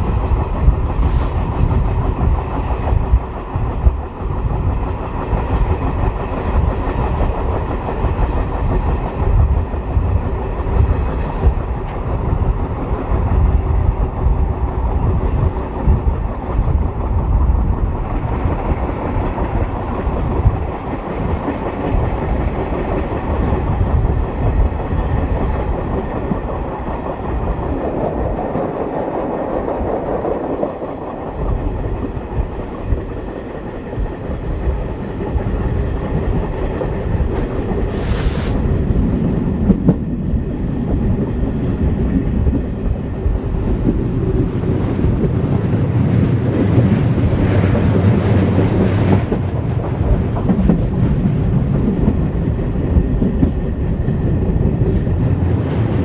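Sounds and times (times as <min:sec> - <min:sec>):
diesel locomotive working under load: 0:00.0 - 0:56.0.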